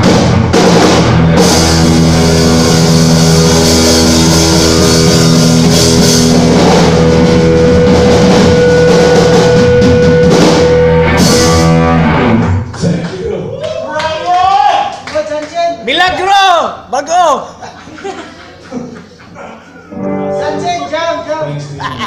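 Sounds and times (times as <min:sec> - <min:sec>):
heavy metal band playing: 0:00.0 - 0:12.7, 0:19.9 - 0:22.0.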